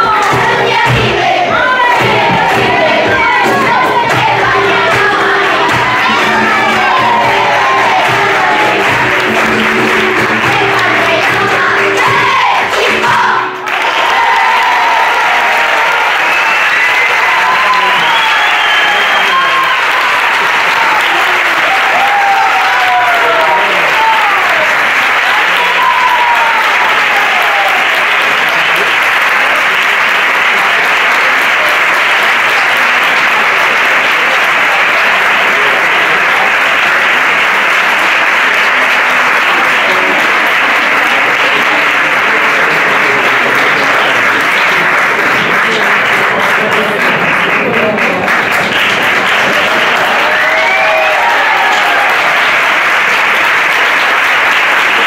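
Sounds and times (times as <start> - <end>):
audience applauding: 0.0 - 55.0.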